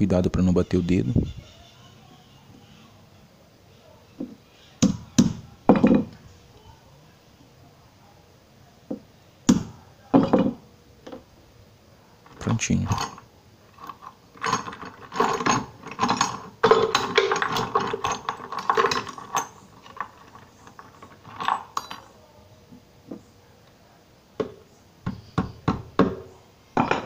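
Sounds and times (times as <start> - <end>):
metal chain clinking and rattling: 12.3 - 22.2.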